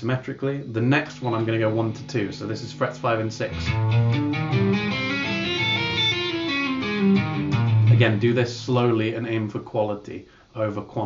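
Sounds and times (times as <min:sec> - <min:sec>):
electric guitar hammer-ons and pull-offs: 0:01.1 - 0:08.2.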